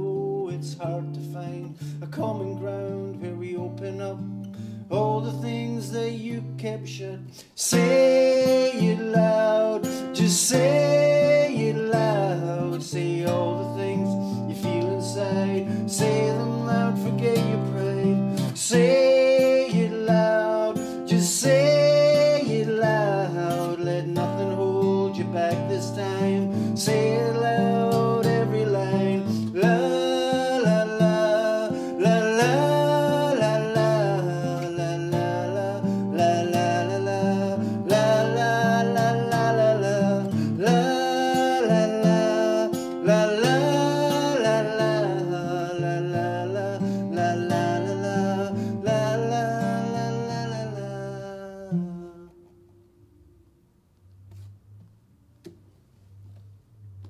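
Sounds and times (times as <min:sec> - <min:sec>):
acoustic guitar chords: 0:00.0 - 0:57.0.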